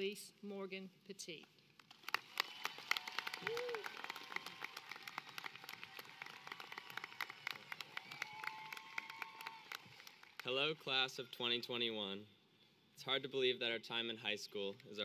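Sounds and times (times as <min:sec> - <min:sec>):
audience applauding: 0:01.8 - 0:11.1.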